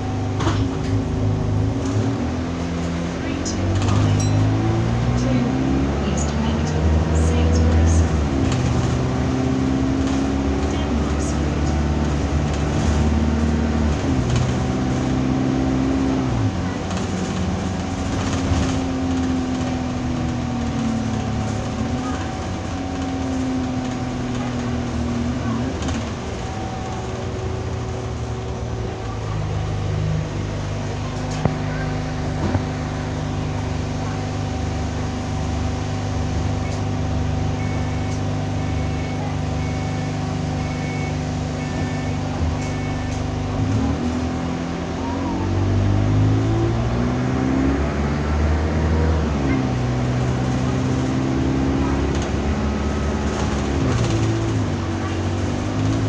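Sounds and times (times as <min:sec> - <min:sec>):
bus engine: 0:00.0 - 0:56.0
faint short beeps: 0:37.6 - 0:43.1.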